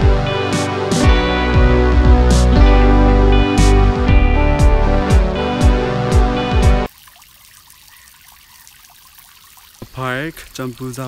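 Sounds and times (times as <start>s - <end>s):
fountain water splashing: 6.9s - 11.0s.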